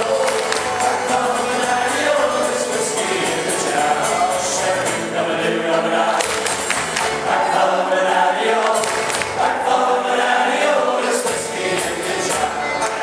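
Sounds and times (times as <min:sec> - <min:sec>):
guitar accompaniment: 0:00.0 - 0:13.0
men singing in harmony: 0:00.0 - 0:13.0.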